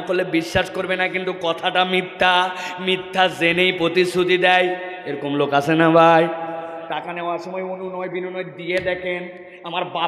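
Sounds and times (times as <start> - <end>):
man preaching in a chant: 0.0 - 10.0.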